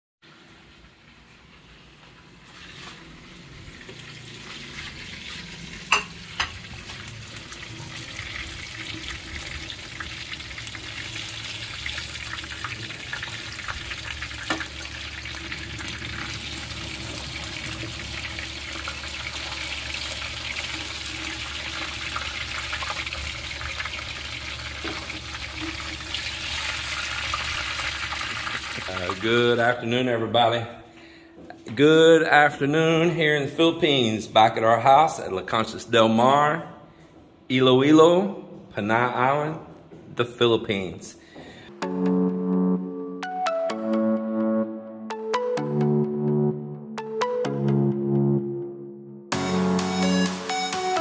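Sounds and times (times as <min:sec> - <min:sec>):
food sizzling in hot oil: 0:02.5 - 0:29.3.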